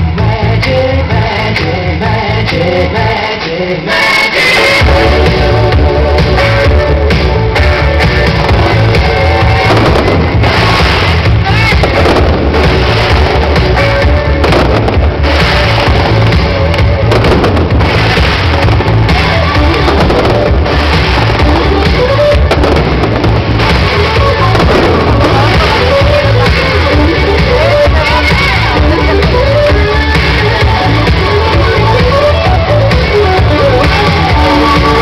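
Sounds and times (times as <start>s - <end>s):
loud music over sound system: 0.0s - 35.0s
fireworks banging and crackling: 4.8s - 35.0s.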